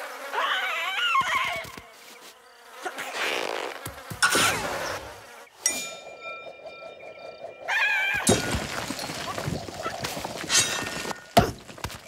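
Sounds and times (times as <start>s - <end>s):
bright twinkling chime: 5.6s - 9.3s
crashes and thuds: 8.2s - 12.0s.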